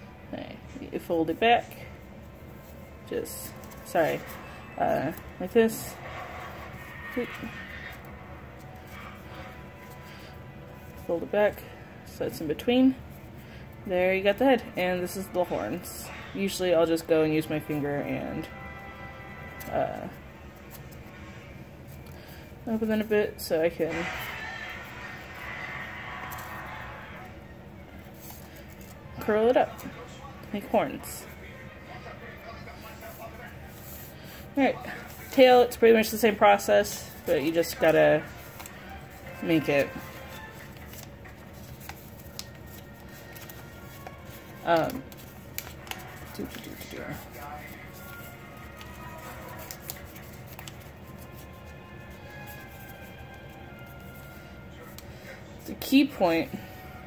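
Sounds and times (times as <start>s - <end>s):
television sound: 0.0s - 57.0s
paper rustling and crackling: 2.2s - 11.7s, 19.5s - 57.0s.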